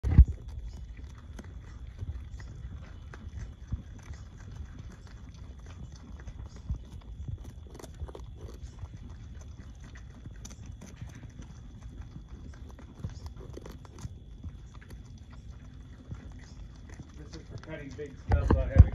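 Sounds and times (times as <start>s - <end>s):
beavers gnawing and chewing: 0.0s - 18.9s.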